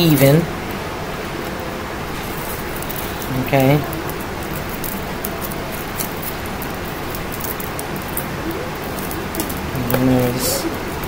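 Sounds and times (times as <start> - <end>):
background hiss: 0.0 - 11.0
wire ticking and rustling: 1.4 - 11.0.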